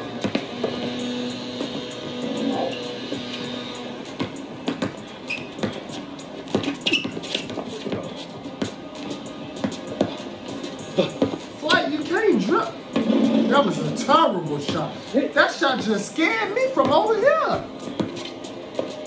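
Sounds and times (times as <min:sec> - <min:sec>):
background music: 0:00.0 - 0:19.0
basketball bouncing on court: 0:00.1 - 0:01.0, 0:04.1 - 0:08.8, 0:11.1 - 0:11.5, 0:16.7 - 0:18.2
man's voice: 0:10.9 - 0:17.8.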